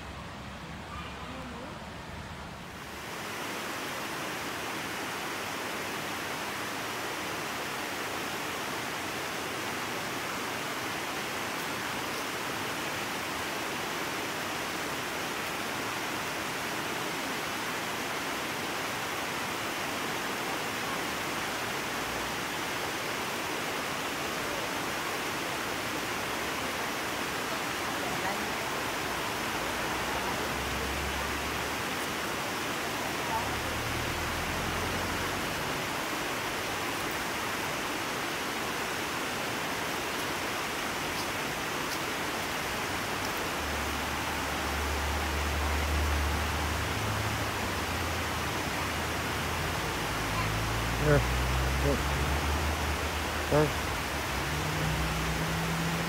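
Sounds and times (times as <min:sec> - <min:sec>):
stream rushing over rock: 0:00.3 - 0:56.0.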